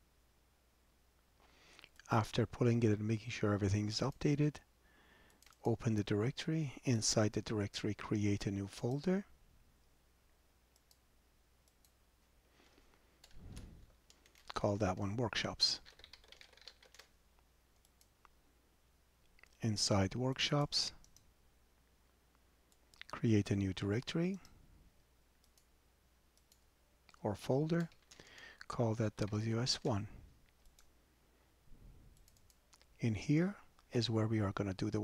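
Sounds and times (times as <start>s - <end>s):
faint computer keyboard typing: 10.7s - 11.0s, 11.6s - 12.0s, 13.2s - 18.4s, 20.9s - 21.3s, 25.4s - 25.7s, 26.3s - 31.0s, 32.1s - 33.0s
faint computer clicks: 32.1s - 33.0s.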